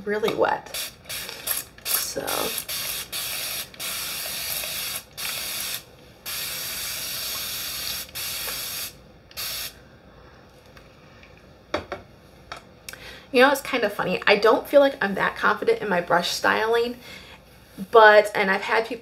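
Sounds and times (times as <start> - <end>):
spray bottle hissing sprays: 0.7 - 9.7.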